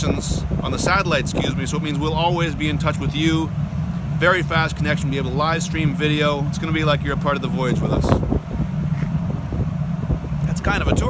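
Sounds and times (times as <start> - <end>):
low machinery hum: 0.0 - 11.0
wind buffeting microphone: 0.0 - 11.0.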